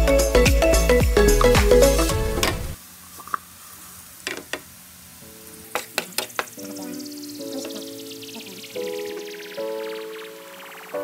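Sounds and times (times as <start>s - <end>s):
vegetables sizzling in a pan: 2.8s - 8.2s.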